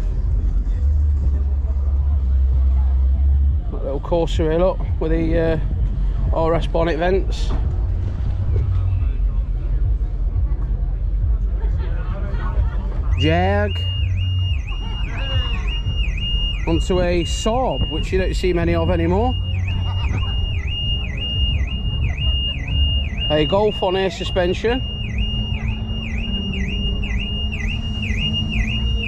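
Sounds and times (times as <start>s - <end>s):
low background rumble: 0.0s - 29.0s
car alarm: 13.1s - 29.0s.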